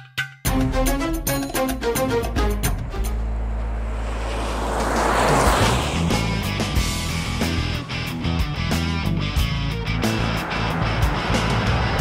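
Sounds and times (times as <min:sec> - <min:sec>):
road and wind noise: 0:00.9 - 0:12.0
car driving by: 0:01.5 - 0:12.0.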